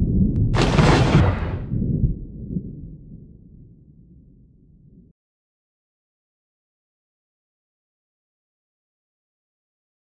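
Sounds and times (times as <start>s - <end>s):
low rumbling sound effect: 0.0s - 5.1s.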